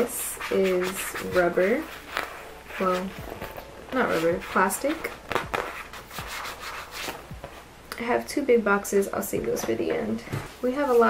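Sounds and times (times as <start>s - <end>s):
plastic pouch rubbing and rustling: 0.0s - 7.6s.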